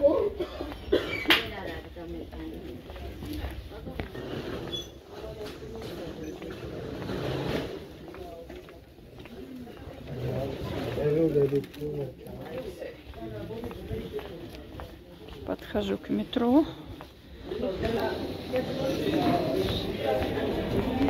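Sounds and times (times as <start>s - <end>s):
indistinct voices: 0.0s - 21.0s
low crowd din: 0.0s - 21.0s.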